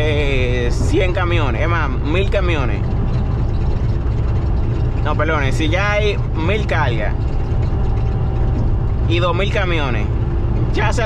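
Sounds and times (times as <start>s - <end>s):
faint steady whine: 0.0s - 11.0s
road noise: 0.0s - 11.0s
truck engine drone: 0.0s - 11.0s.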